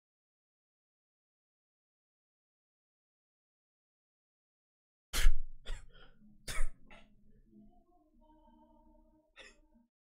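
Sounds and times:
person coughing: 0:05.2 - 0:07.0, 0:09.4 - 0:09.6.

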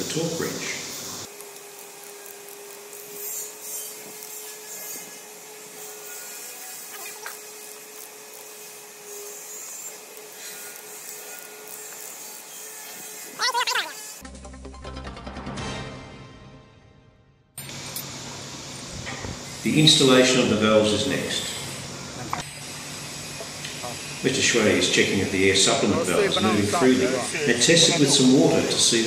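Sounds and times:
ratchet wrench on metal: 0:01.4 - 0:13.3
music: 0:14.2 - 0:17.6.

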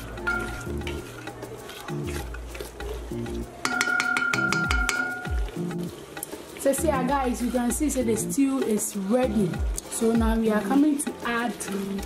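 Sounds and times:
spoon stirring stew in a pot: 0:00.0 - 0:06.6
background music: 0:00.0 - 0:12.0
stew frying: 0:00.0 - 0:12.0.

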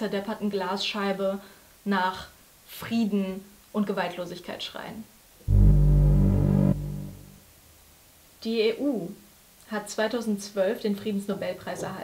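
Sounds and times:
deep synthesizer chord: 0:05.4 - 0:07.5.

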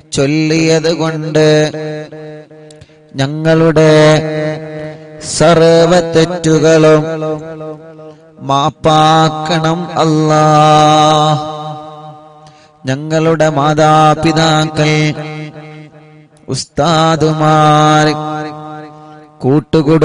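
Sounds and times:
man chanting: 0:00.0 - 0:20.0.

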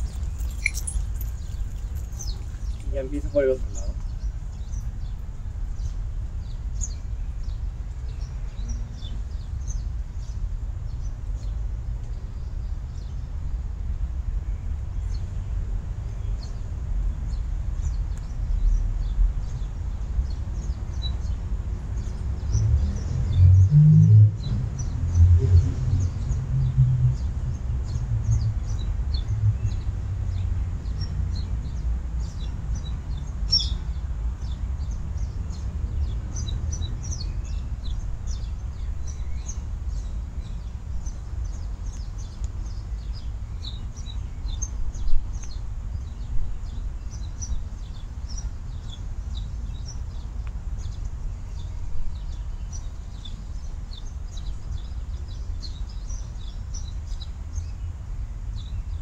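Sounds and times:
small birds chirping: 0:00.0 - 0:23.6, 0:24.4 - 0:59.0.

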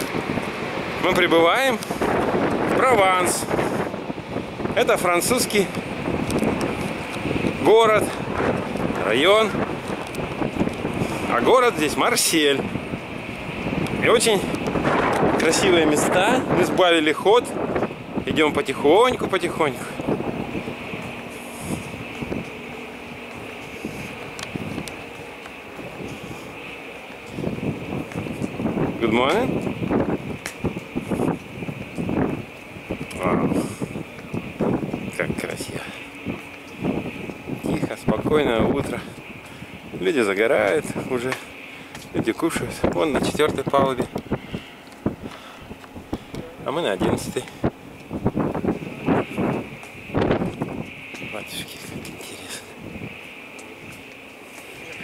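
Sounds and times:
steady high whine: 0:00.0 - 0:55.0
steady high-pitched hiss: 0:00.0 - 0:55.0
wind buffeting microphone: 0:00.0 - 0:55.0.

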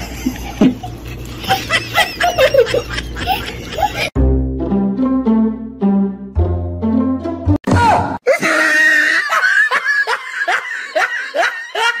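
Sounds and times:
person laughing: 0:00.0 - 0:04.1, 0:08.3 - 0:12.0.

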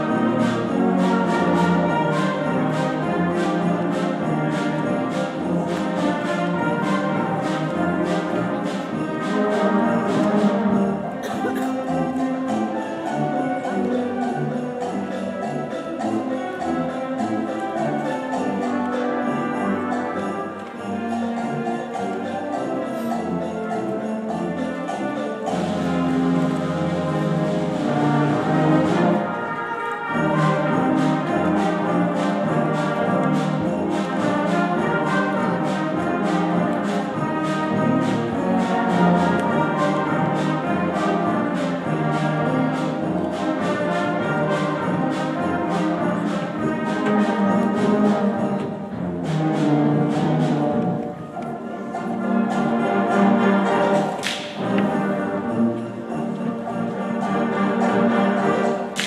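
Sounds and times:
concert band playing: 0:00.0 - 0:59.0
percussion beat: 0:00.0 - 0:59.0.

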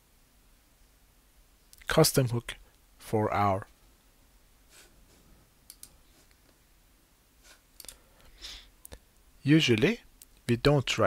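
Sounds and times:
faint clicks: 0:05.6 - 0:06.6, 0:07.8 - 0:08.0.

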